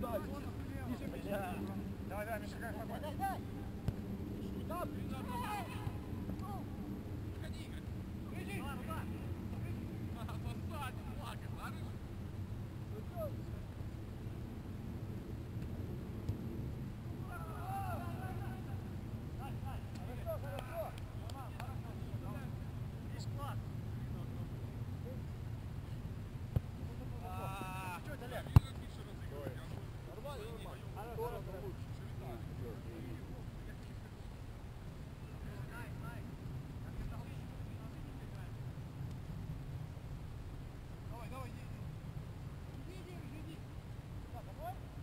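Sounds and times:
distant shouts of players: 0:04.5 - 0:06.8, 0:17.2 - 0:21.6.

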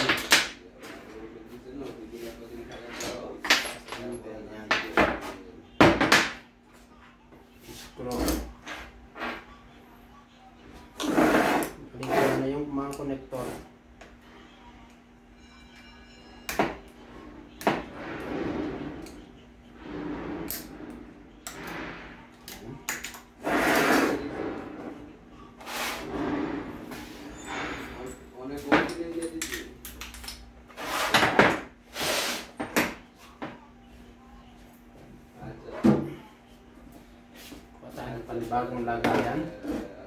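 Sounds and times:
steady low hum: 0:11.8 - 0:30.8.

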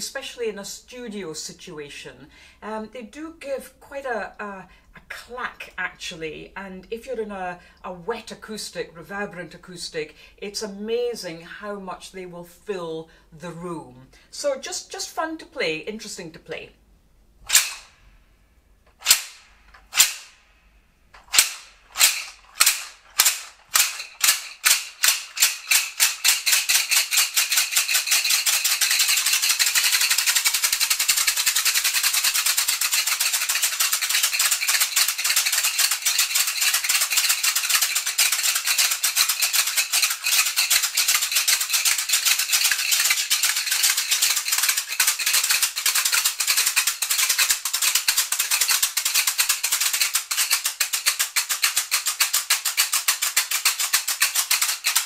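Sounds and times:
stick rattles clacking: 0:21.1 - 0:55.0.

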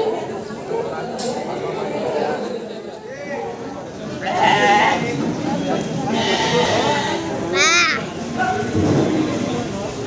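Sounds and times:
people talking: 0:00.0 - 0:10.0
goats bleating: 0:04.2 - 0:05.1, 0:06.1 - 0:07.3.

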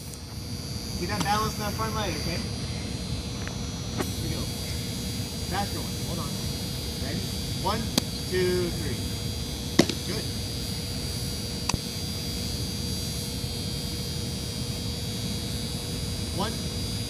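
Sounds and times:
steady background hum: 0:00.0 - 0:17.0
baseball smacking into mitt: 0:09.8 - 0:10.0.

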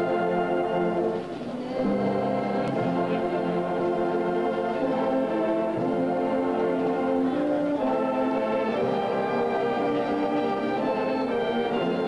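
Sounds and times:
brass band playing chords: 0:00.0 - 0:12.0.

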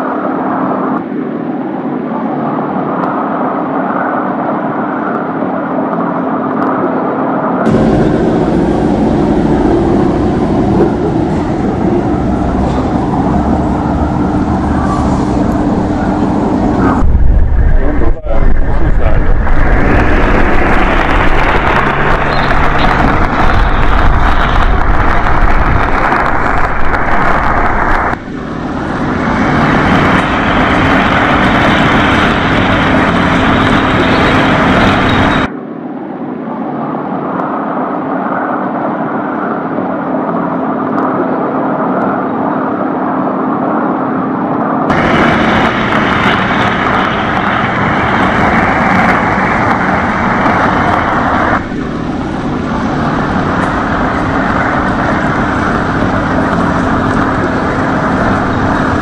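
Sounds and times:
car road and engine noise: 0:00.0 - 0:59.0.

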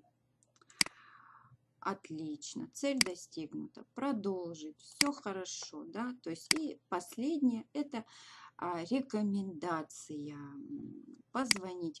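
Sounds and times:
computer mouse click: 0:11.5 - 0:11.7.

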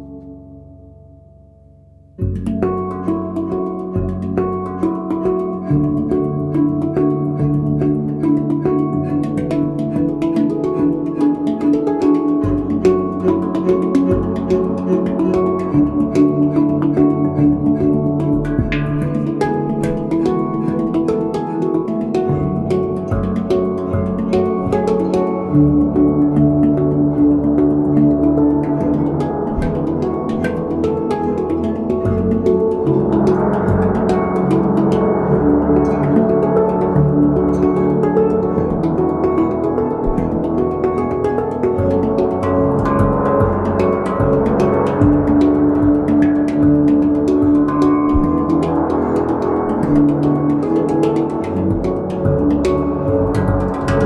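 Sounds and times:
ringing handpan notes: 0:00.0 - 0:54.0.

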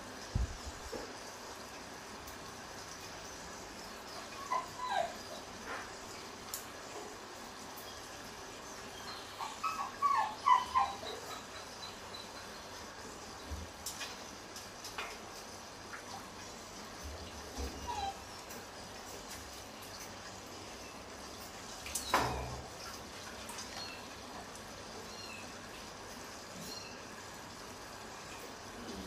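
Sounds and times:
macaque squeaky calls: 0:09.1 - 0:12.2.

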